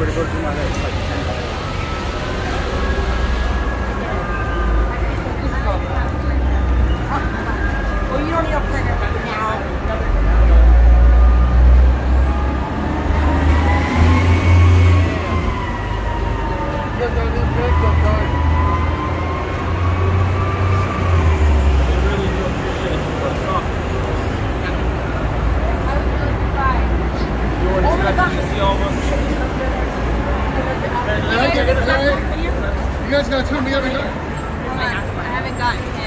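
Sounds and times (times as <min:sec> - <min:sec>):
vehicles idling and passing: 0:00.0 - 0:36.0
wailing siren tone: 0:01.0 - 0:05.9, 0:11.1 - 0:22.4.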